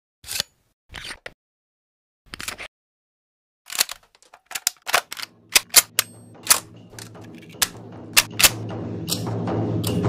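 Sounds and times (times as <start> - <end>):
camcorder cassette mechanism clicking: 3.7 - 6.0.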